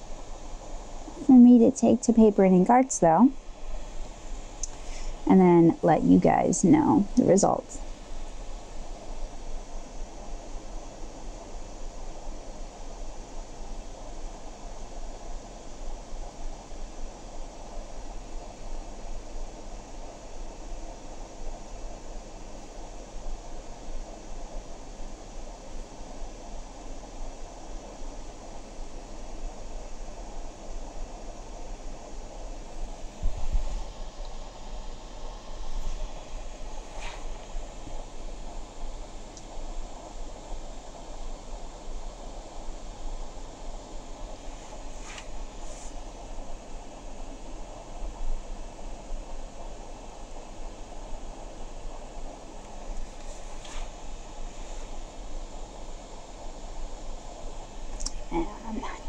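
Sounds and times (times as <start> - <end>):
background hiss: 0.0 - 59.0
constant low hum: 0.0 - 59.0.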